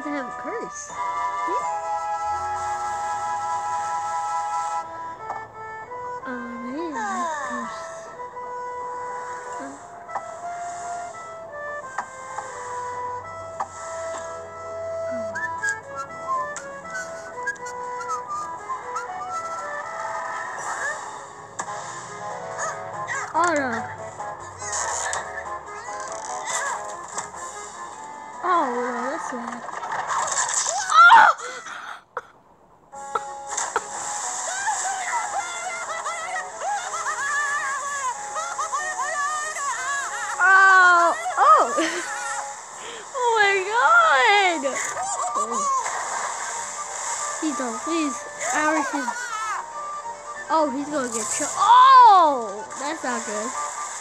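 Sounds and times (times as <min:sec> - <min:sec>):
cartoon background music: 0:00.0 - 0:31.1, 0:32.9 - 0:54.0
cartoon character voices: 0:06.4 - 0:07.9, 0:34.5 - 0:42.0, 0:43.2 - 0:45.9, 0:47.4 - 0:49.8, 0:50.6 - 0:53.2
cartoon sound effects: 0:15.1 - 0:21.2, 0:22.5 - 0:26.9, 0:33.2 - 0:42.5, 0:43.2 - 0:46.7, 0:47.4 - 0:53.6.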